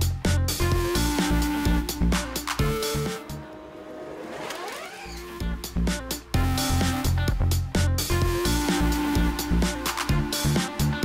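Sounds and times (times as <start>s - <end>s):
background music with beat: 0.0s - 3.8s, 5.1s - 11.0s
electric motor whine rising: 1.2s - 7.2s.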